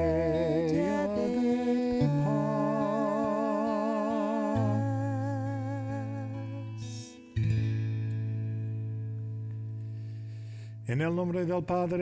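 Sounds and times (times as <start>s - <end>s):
woman humming with vibrato: 0.0s - 7.1s
acoustic guitar chords: 0.0s - 12.0s.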